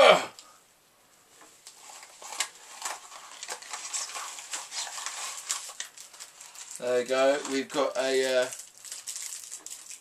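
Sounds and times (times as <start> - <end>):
paper rustling and crinkling: 1.7 - 10.0.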